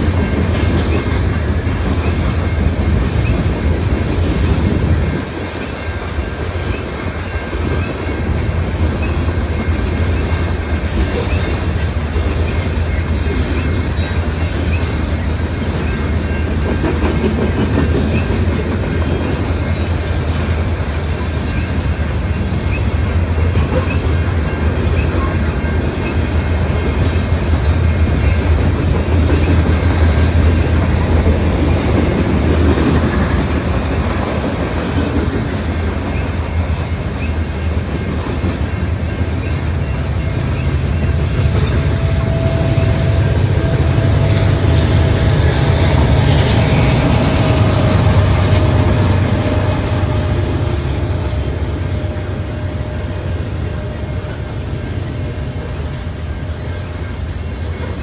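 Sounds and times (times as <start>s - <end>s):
freight train rumbling past: 0.0s - 58.0s.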